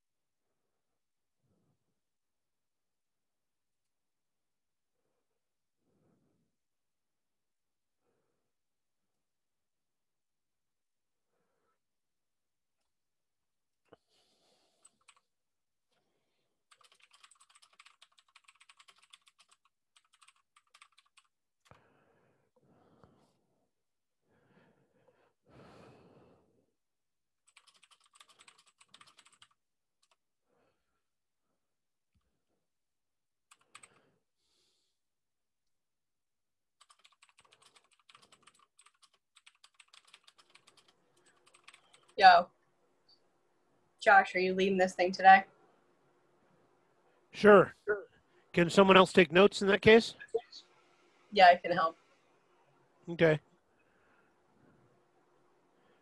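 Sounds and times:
typing on a keyboard: 0:14.8 - 0:15.2, 0:16.7 - 0:21.3, 0:27.4 - 0:30.2, 0:33.5 - 0:34.0, 0:36.8 - 0:42.2.

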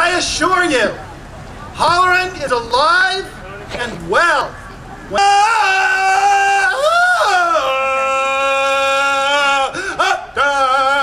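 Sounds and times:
man hollering: 0:05.1 - 0:11.0.

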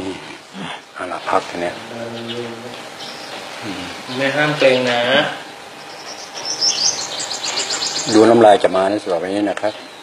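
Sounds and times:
small bird chirping: 0:01.2 - 0:10.0.

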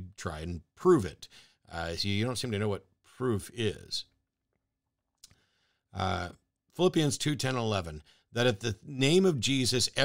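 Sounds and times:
man talking: 0:00.0 - 0:04.2, 0:06.0 - 0:10.0
short breath: 0:01.3 - 0:01.7, 0:05.3 - 0:05.9.

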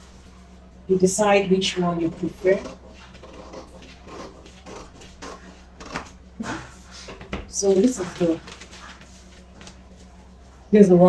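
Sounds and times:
paper rustling: 0:07.0 - 0:10.2.

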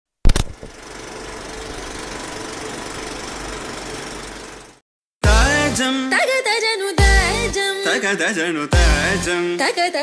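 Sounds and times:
film projector rattling and whirring: 0:00.3 - 0:04.8.

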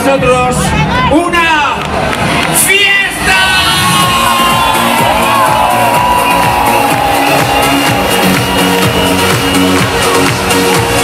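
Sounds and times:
synth-pop music over loudspeakers: 0:00.0 - 0:11.0
crowd cheering: 0:01.8 - 0:11.0.

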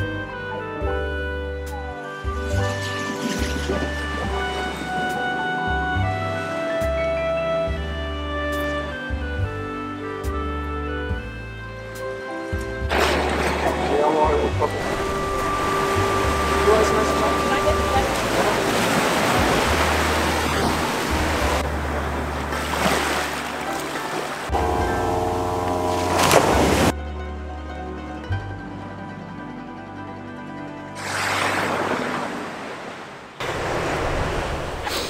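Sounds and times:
background music with bass: 0:00.0 - 0:31.5
waves on rocky shore: 0:02.6 - 0:07.2, 0:12.9 - 0:26.9, 0:31.0 - 0:35.0.

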